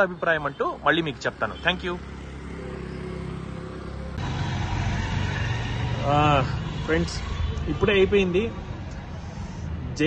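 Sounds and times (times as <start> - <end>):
rough traffic rumble: 0.0 - 10.0.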